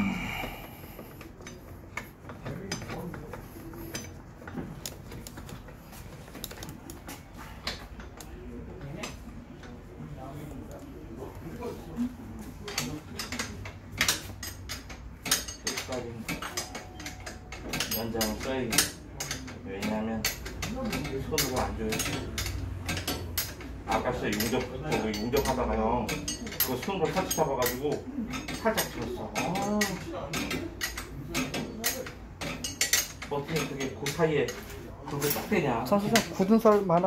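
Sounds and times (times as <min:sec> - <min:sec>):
small metal parts clicking: 0:12.7 - 0:35.5.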